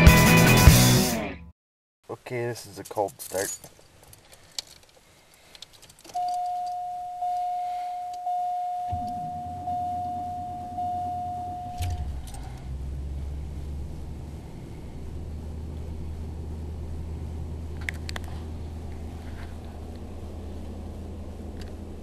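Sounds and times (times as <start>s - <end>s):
car engine starting and idling: 5.8s - 22.0s
dashboard warning chime: 6.1s - 12.6s.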